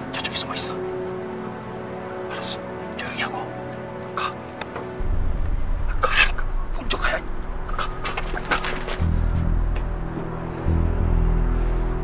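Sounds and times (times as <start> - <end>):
heavy dramatic music: 0.0 - 12.0.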